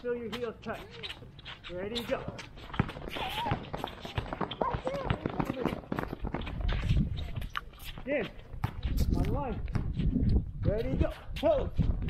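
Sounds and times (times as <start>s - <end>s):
sneaker footfalls on hard court: 0.2s - 11.1s.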